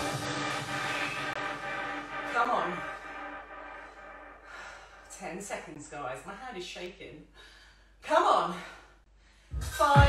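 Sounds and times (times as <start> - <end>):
woman breathing hard: 2.8 - 5.1.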